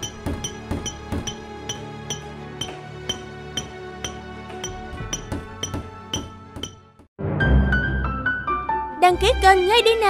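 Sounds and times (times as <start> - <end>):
hammers striking chisels on stone: 0.0 - 6.9
background music with sustained notes: 0.0 - 10.0.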